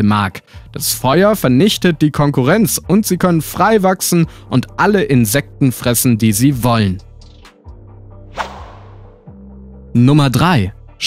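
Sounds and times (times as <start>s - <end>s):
soft background music: 0.0s - 11.0s
whoosh transition effect: 8.4s - 9.2s.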